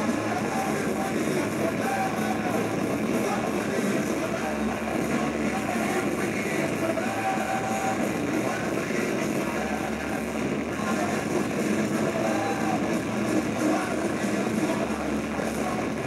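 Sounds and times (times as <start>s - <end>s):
person singing: 0.0s - 16.0s
punk rock band playing: 0.0s - 16.0s.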